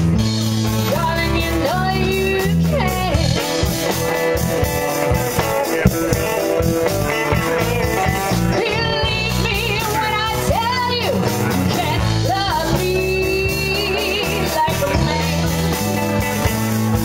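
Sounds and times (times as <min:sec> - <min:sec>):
bass notes: 0:00.0 - 0:17.0
drums: 0:00.0 - 0:17.0
electric guitar: 0:00.0 - 0:17.0
keyboard: 0:00.0 - 0:17.0
woman singing: 0:00.8 - 0:03.6, 0:07.4 - 0:15.8.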